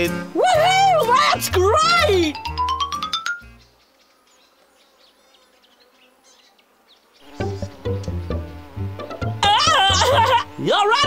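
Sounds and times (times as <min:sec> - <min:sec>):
cartoon fly wings buzzing: 0:01.0 - 0:11.0
music with rising slide: 0:07.3 - 0:09.4.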